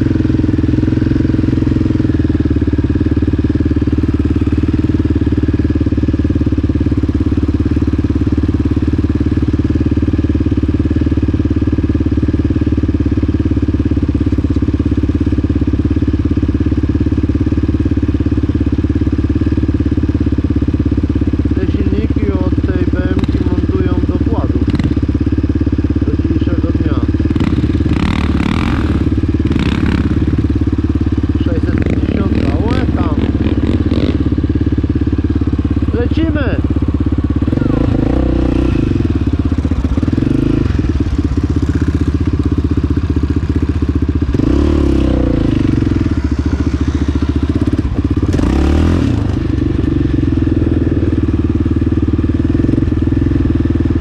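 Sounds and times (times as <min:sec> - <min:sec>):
quad engine idling: 0:00.0 - 0:54.0.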